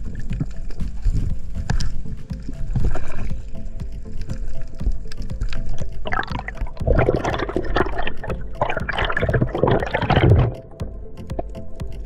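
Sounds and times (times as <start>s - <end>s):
muffled underwater rumble: 0.0s - 10.7s
knocks and clicks: 0.0s - 12.0s.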